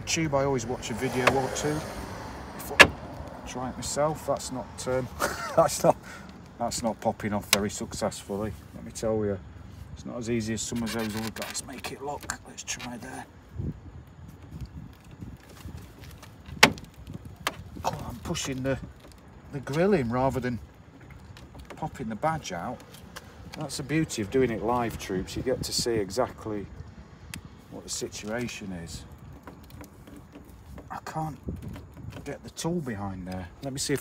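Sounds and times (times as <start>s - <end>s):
plastic tool scraping: 10.7s - 13.2s, 29.1s - 32.4s.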